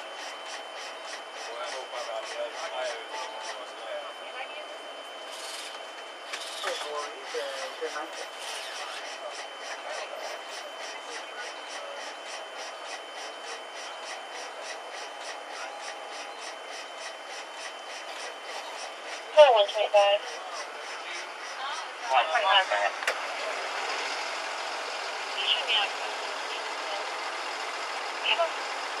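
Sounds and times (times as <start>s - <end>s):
rhythmic chest compression rubbing: 0.0s - 3.9s, 5.3s - 22.9s.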